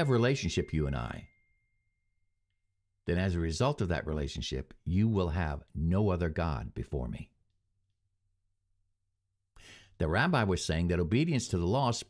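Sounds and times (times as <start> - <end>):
man breathing in: 9.6 - 10.0.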